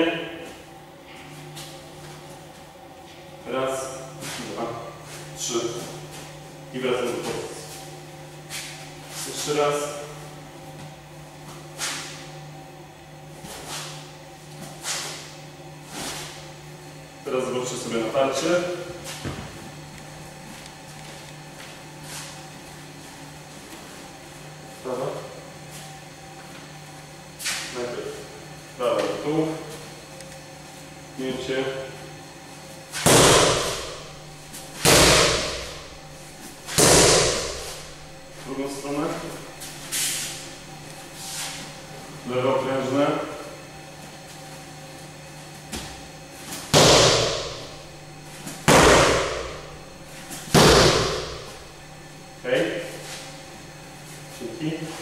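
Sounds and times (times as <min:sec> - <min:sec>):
kicks smacking a kick shield: 0:33.0 - 0:34.0, 0:34.8 - 0:35.8, 0:36.7 - 0:37.8, 0:46.7 - 0:47.7, 0:48.6 - 0:49.6, 0:50.5 - 0:51.5.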